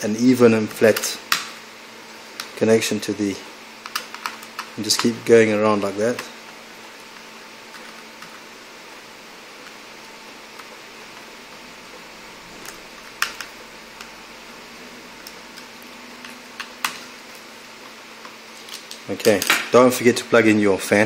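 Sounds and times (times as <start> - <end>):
steady low hiss: 0.0 - 21.0.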